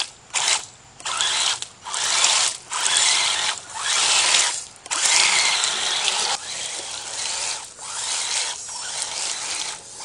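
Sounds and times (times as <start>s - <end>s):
electric motor and gears whirring: 0.0s - 10.0s
churning through mud: 0.4s - 10.0s.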